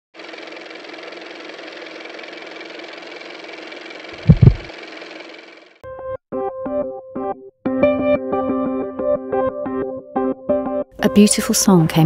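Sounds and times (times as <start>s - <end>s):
car engine and road noise: 2.3s - 5.3s
heavy low thumps: 4.2s - 4.7s.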